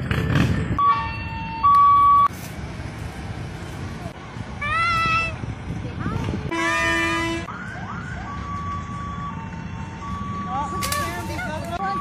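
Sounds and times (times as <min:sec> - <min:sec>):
vehicles driving past: 0:00.0 - 0:12.0
vehicle horn honk: 0:06.5 - 0:07.5.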